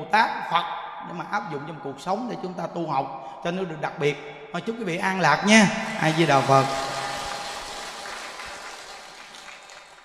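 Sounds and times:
audience applause: 0:05.8 - 0:10.0.

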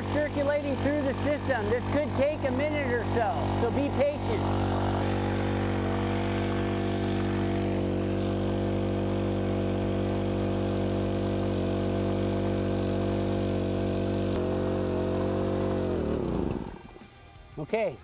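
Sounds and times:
small four-stroke engine running: 0:00.0 - 0:17.9.

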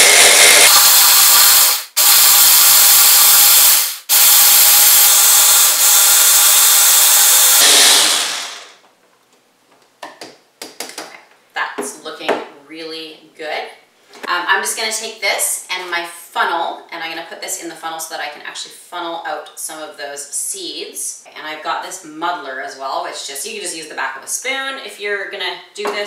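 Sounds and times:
hand blender motor running: 0:00.0 - 0:08.8.

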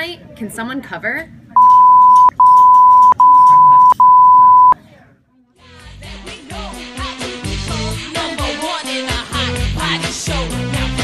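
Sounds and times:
censor beep: 0:01.6 - 0:04.8
music: 0:05.6 - 0:11.0.

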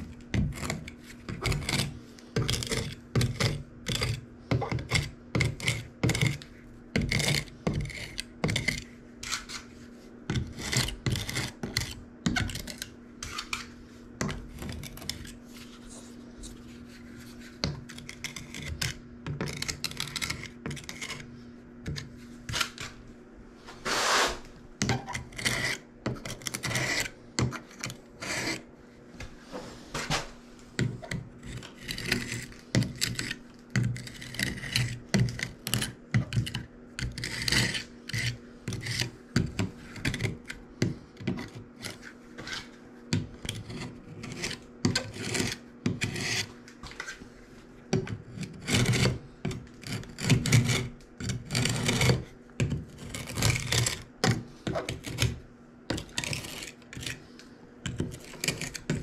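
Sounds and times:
knife blade scraping tile joints: 0:24.0 - 0:28.6, 0:31.0 - 0:39.1, 0:43.4 - 0:47.2, 0:48.0 - 0:57.2, 0:57.9 - 0:59.0.

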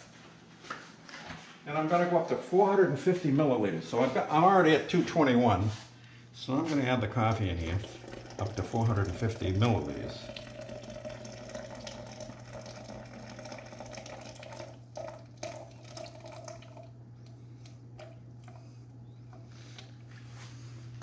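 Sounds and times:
hot water pouring: 0:07.4 - 0:17.0.

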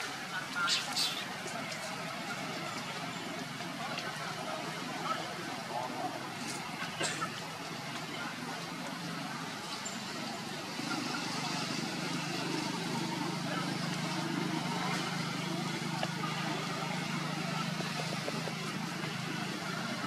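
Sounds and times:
motor traffic hum: 0:00.0 - 0:20.0.

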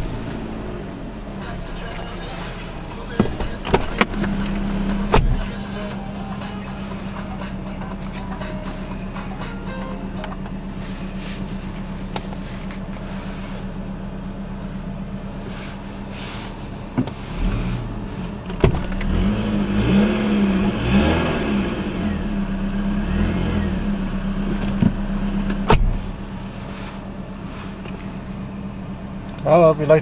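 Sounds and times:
car engine idling: 0:00.0 - 0:30.0.

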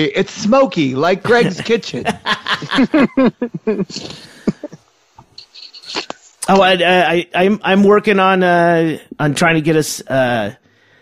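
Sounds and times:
men chuckling: 0:01.3 - 0:04.8.

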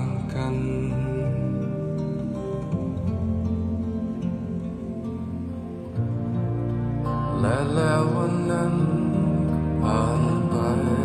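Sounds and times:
slow chanted melody over sustained tones: 0:00.0 - 0:11.0.

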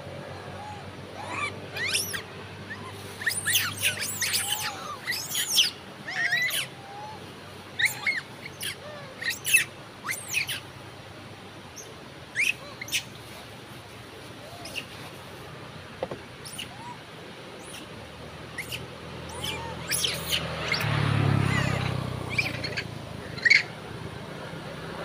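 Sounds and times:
monkeys giving high-pitched calls: 0:00.2 - 0:10.7, 0:11.8 - 0:13.3, 0:14.4 - 0:15.0, 0:16.4 - 0:23.8.

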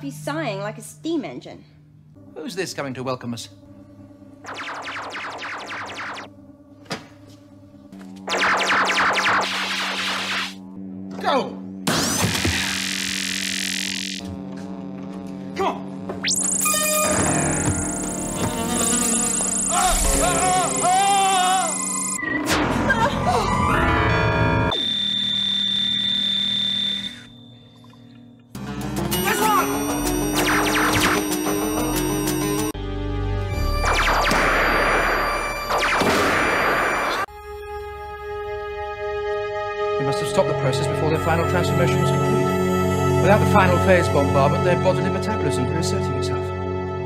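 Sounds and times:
electronic music: 0:04.4 - 0:06.3, 0:08.2 - 0:10.8, 0:16.2 - 0:27.3, 0:29.1 - 0:32.8, 0:33.5 - 0:37.3
laser beam whine: 0:04.4 - 0:06.3, 0:08.2 - 0:10.7, 0:11.9 - 0:14.3, 0:16.2 - 0:22.6, 0:24.7 - 0:27.5, 0:29.8 - 0:32.8, 0:33.6 - 0:37.3
warbling synthesizer tones: 0:04.4 - 0:06.3, 0:08.3 - 0:10.8, 0:30.2 - 0:32.7, 0:33.6 - 0:37.3.

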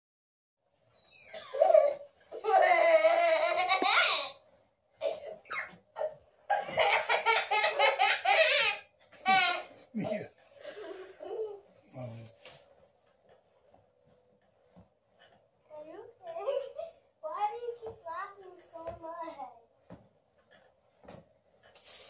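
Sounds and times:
toddler laughing: 0:01.3 - 0:04.3, 0:05.0 - 0:09.8.

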